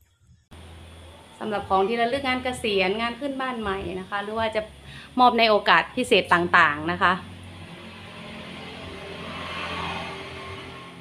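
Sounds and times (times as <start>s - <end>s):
faint low hum: 0.5s - 10.6s
soft rushing noise: 7.2s - 11.0s.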